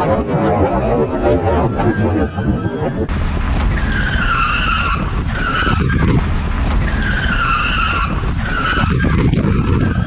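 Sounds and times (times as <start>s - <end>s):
tyres squealing: 2.3s - 10.0s
car engine running hard: 3.0s - 10.0s.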